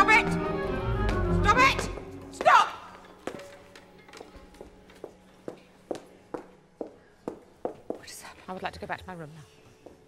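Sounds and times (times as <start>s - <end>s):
hard-soled footsteps on hard floor: 1.0s - 8.2s.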